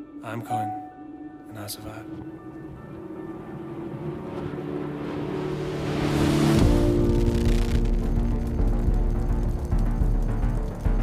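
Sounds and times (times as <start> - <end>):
low drone notes: 1.9 - 11.0
whooshing swell: 2.0 - 7.6.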